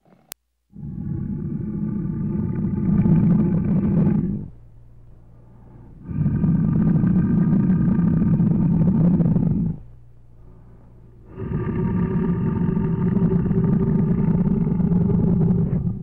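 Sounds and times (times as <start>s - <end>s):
big cat roaring: 0.0s - 4.6s, 6.0s - 9.9s, 11.2s - 16.0s.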